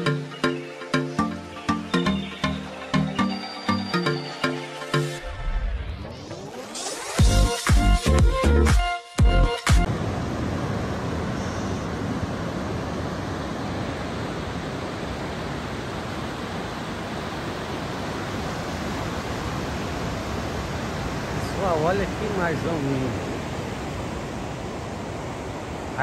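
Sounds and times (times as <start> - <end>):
electronic dance music: 5.9 - 9.9
ocean waves breaking: 9.9 - 26.0.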